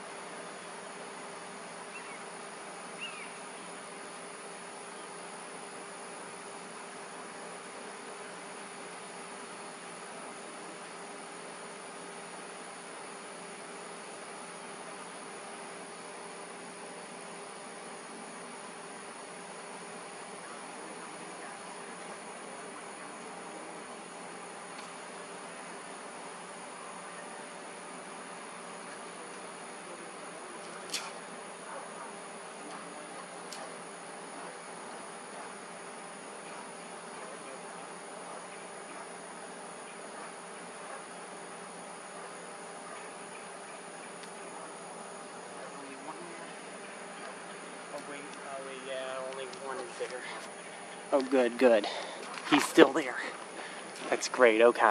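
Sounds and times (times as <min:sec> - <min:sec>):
insect chorus humming: 0:00.0 - 0:54.9.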